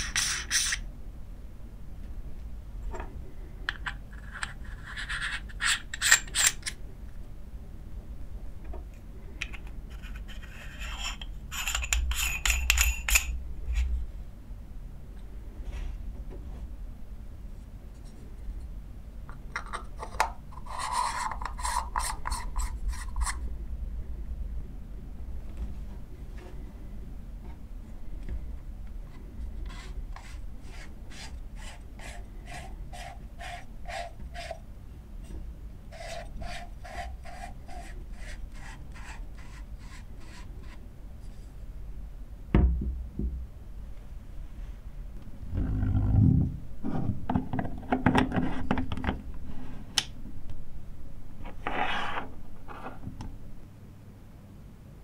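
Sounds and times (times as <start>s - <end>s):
metal rings scraping as twisted: 4.2s - 6.7s
threads rasping as screwed: 29.6s - 34.6s, 35.9s - 40.8s.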